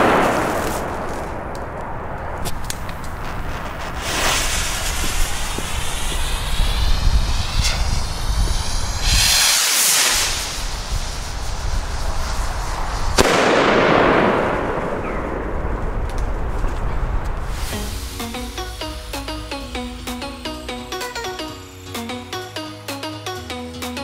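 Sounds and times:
rumble and crackle: 0:00.0 - 0:17.8
rockets launching with a hiss: 0:00.0 - 0:23.2
firework shell bang: 0:13.1 - 0:15.5.

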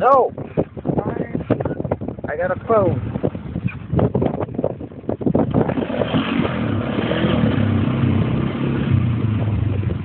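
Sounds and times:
atv engine running: 0:00.4 - 0:10.0.

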